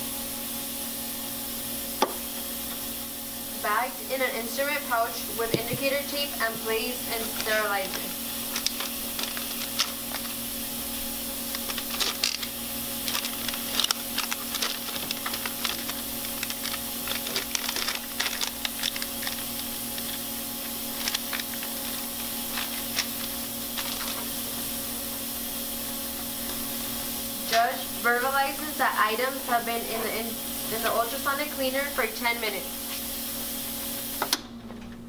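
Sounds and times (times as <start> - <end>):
ultrasonic cleaner humming and hissing: 0.0 - 34.6.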